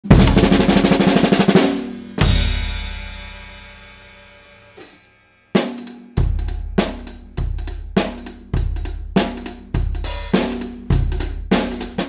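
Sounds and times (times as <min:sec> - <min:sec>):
loud ringing drum hit: 0:00.0 - 0:04.1
drum roll: 0:00.0 - 0:05.0, 0:05.6 - 0:12.0.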